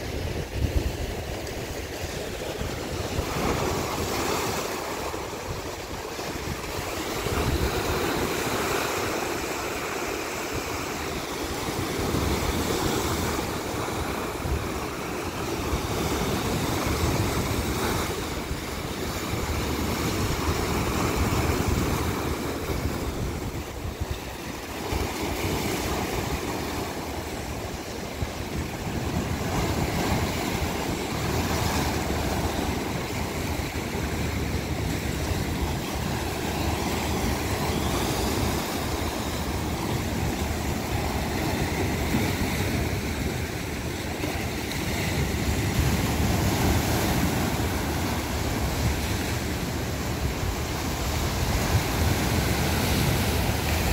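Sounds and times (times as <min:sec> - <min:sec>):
sea waves breaking on rocks: 0:00.0 - 0:53.9
wind rumble on microphone: 0:00.0 - 0:53.9.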